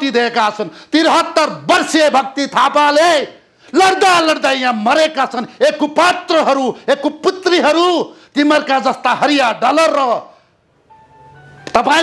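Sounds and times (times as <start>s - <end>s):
man speaking forcefully: 0.0s - 10.4s, 11.7s - 12.0s.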